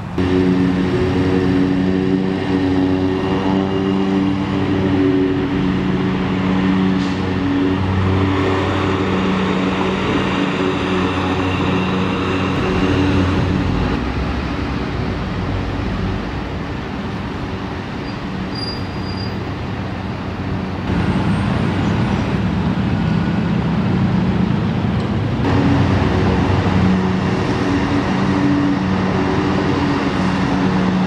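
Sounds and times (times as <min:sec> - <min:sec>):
road noise: 0:00.0 - 0:31.0
vehicle engine hum: 0:00.0 - 0:31.0.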